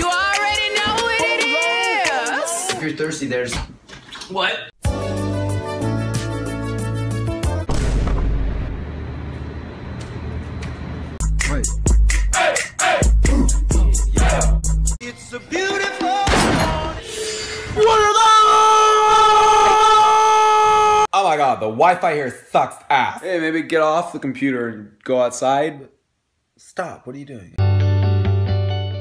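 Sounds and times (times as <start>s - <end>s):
loud boom with deep rumble: 7.7s - 9.2s.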